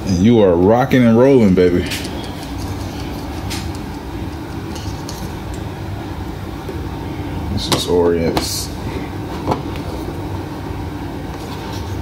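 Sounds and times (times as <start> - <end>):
person speaking: 7.4 - 8.9.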